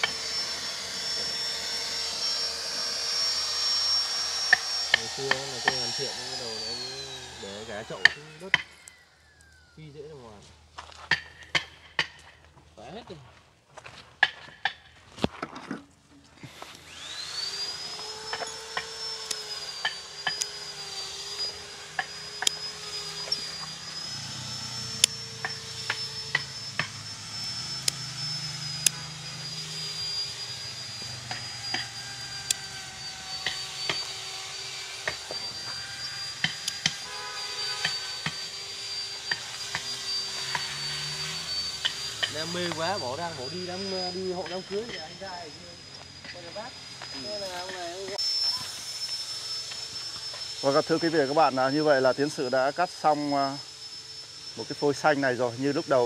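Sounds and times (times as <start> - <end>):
power tool whining: 0.0 - 13.1, 14.2 - 56.0.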